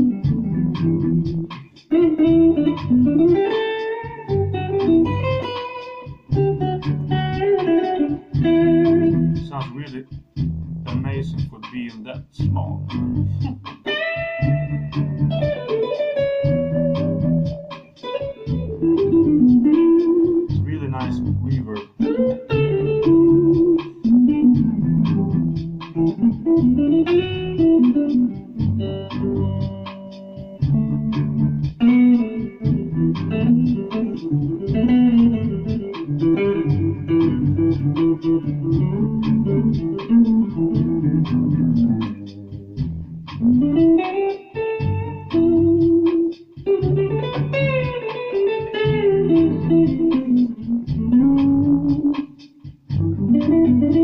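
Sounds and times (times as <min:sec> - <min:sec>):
electric guitar melodic phrases: 0:00.0 - 0:11.4, 0:12.8 - 0:54.0.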